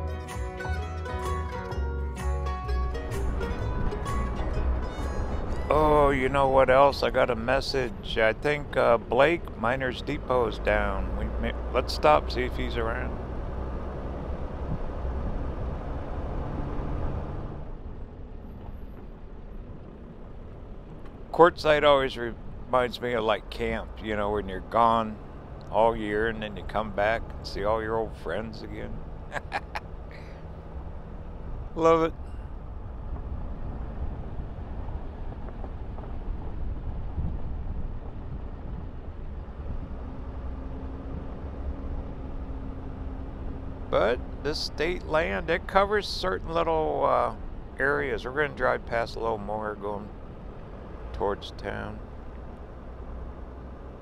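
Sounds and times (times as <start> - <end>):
vehicle driving on dirt road: 0.0 - 54.0.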